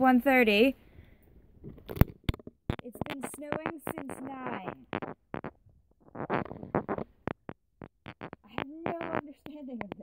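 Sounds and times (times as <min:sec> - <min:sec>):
light rubbing: 0:01.4 - 0:10.0.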